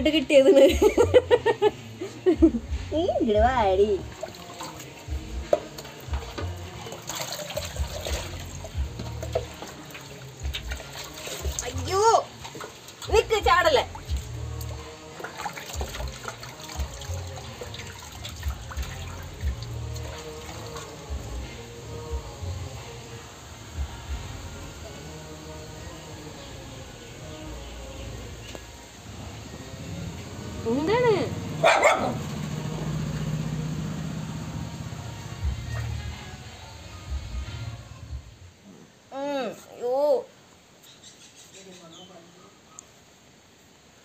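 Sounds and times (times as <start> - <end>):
music with pulsing bass: 0.0 - 4.2, 5.1 - 6.8, 7.8 - 9.7, 13.1 - 15.0, 18.4 - 20.2, 21.0 - 23.0, 29.3 - 38.5
water splashing in steel basin: 4.0 - 21.5
puppy yelping: 31.6 - 32.2.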